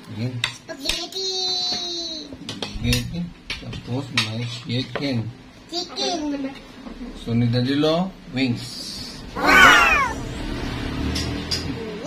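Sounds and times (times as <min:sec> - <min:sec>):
high voice exclaiming wow: 0:09.4 - 0:10.2.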